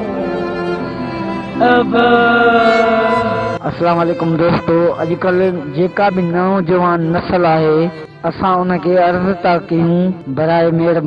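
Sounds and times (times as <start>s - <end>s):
music of long held notes: 0.0s - 8.3s.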